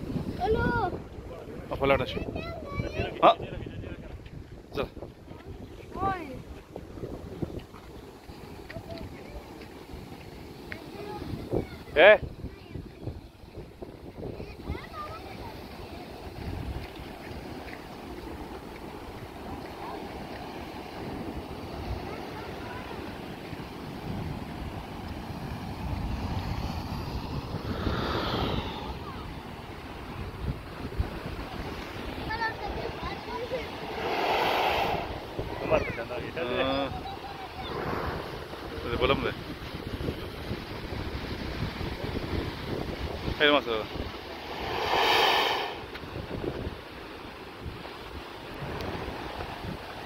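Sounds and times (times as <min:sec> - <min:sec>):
wind buffeting microphone: 0:00.0 - 0:50.0
sea surf breaking over rocks: 0:05.9 - 0:50.0
low rumble: 0:44.1 - 0:46.2.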